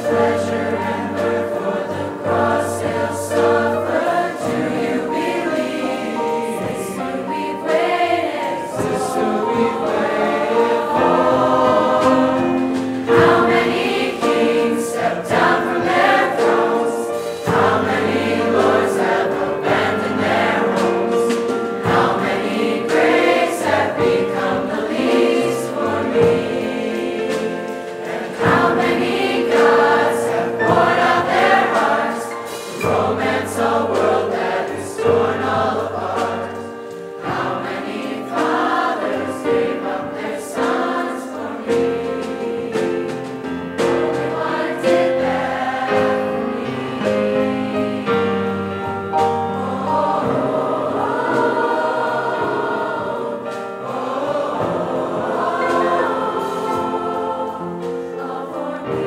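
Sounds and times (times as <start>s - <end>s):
teen choir singing: 0.0s - 59.0s.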